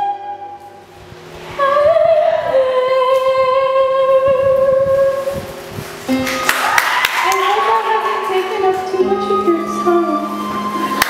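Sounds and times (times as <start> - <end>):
girl singing with vibrato: 0.0 - 0.8, 1.5 - 6.2, 7.2 - 11.0.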